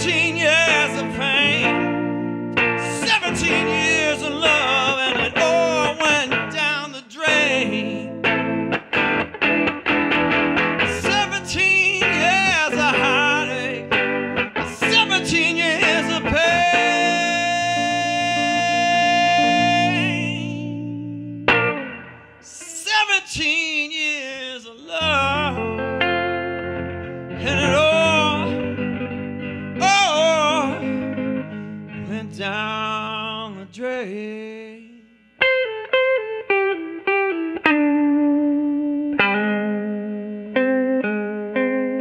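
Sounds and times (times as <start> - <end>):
man singing blues: 0.0 - 8.5, 10.6 - 21.7, 22.4 - 35.3
electric guitar: 0.0 - 42.0.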